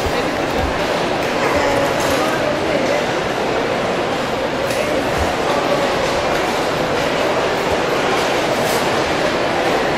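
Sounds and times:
busy factory floor din: 0:00.0 - 0:09.9.

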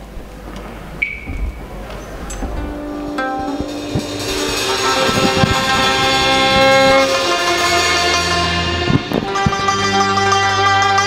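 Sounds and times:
low thuds: 0:00.2 - 0:09.8.

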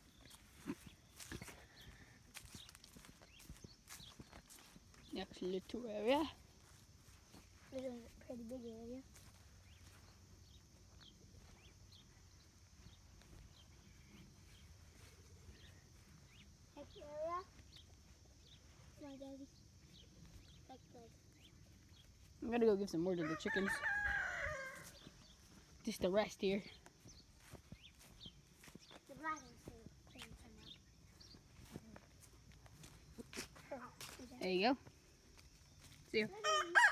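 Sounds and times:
small birds chirping: 0:00.0 - 0:36.4
footsteps in grass and leaves: 0:00.0 - 0:36.9.

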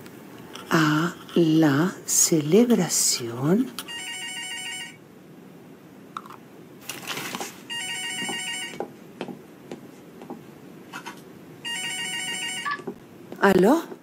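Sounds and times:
telephone ringing: 0:03.8 - 0:05.0, 0:07.7 - 0:08.8, 0:11.6 - 0:12.9.

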